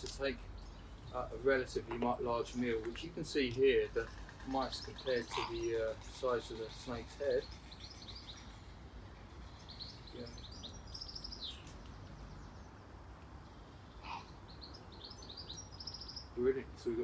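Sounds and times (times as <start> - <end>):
faint low outdoor background noise: 0.0 - 17.0
small birds chirping: 0.0 - 17.0.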